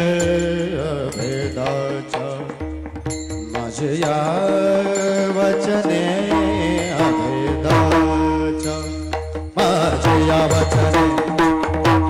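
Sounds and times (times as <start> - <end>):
drum strokes: 0.0 - 12.0
person singing: 0.0 - 12.0.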